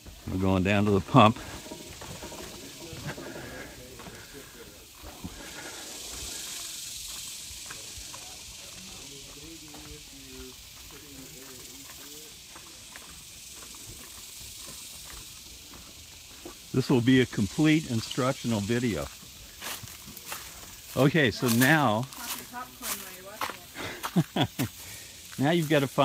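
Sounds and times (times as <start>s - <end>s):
steady high hiss: 0.0s - 26.0s
faint voices talking: 0.4s - 14.0s.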